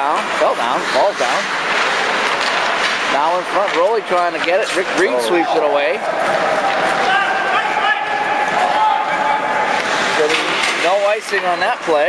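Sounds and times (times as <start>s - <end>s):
skates scraping ice: 0.0s - 12.0s
hockey sticks and puck knocking: 0.2s - 5.0s, 6.0s - 12.0s.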